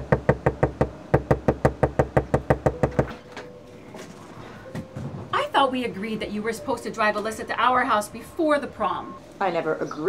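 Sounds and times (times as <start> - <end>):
rapid knocking on door: 0.0 - 3.1.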